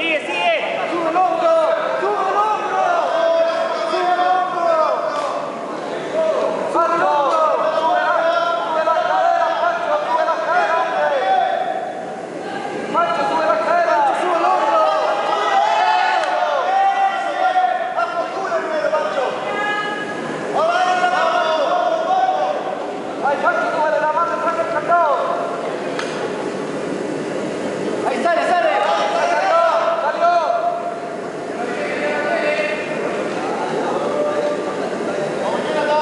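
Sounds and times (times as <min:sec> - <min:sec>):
voices shouting in a hall: 0:00.0 - 0:36.0.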